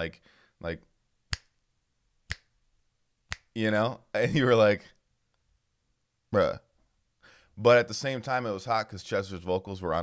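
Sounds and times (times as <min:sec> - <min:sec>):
finger snaps: 0:01.3 - 0:01.6, 0:02.3 - 0:02.5, 0:03.3 - 0:03.5.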